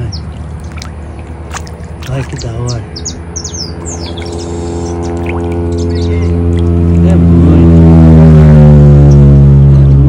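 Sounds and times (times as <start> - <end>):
bird chirps: 0.0 - 6.7
motor droning low: 0.0 - 10.0.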